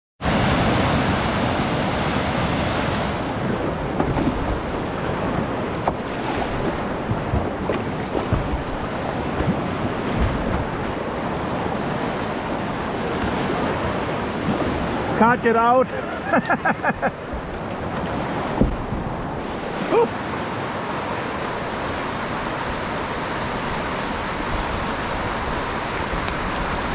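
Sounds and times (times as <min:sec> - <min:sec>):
whitewater river rapids rushing: 0:00.2 - 0:26.9
wind buffeting microphone: 0:00.4 - 0:15.2, 0:17.0 - 0:19.8
paddle strokes splashing: 0:02.1 - 0:26.9.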